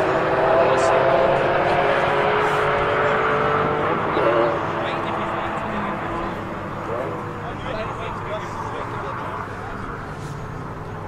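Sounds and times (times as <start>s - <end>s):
sports cars accelerating: 0.0s - 11.0s.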